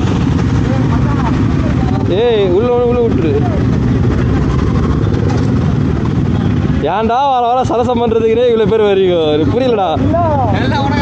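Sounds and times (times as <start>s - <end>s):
motorcycle engine rumbling: 0.0s - 11.0s
man speaking: 6.8s - 11.0s.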